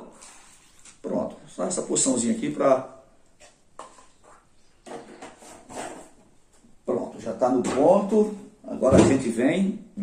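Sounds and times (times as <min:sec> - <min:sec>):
plastic cup rubbing and scraping: 0:03.8 - 0:06.2.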